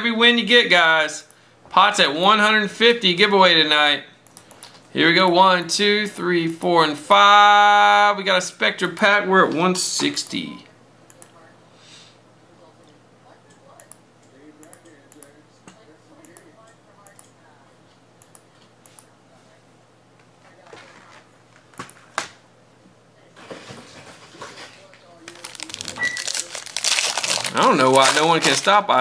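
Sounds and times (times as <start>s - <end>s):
foil wrapper crinkling and tearing: 25.2s - 28.8s.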